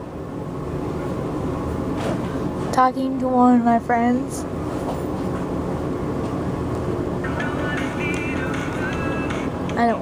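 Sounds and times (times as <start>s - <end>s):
low rumbling background noise: 0.0s - 10.0s
faint music: 7.2s - 10.0s.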